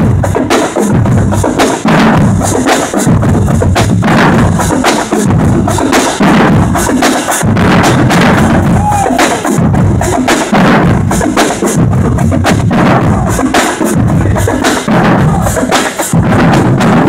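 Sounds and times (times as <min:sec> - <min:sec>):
bass drums: 0:00.0 - 0:17.0
snare drums: 0:00.0 - 0:17.0.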